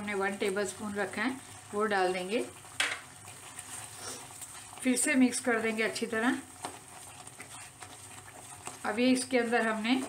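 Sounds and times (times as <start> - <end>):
potato frying sizzle: 0.0 - 10.0
woman speaking: 4.8 - 6.5, 8.8 - 10.0.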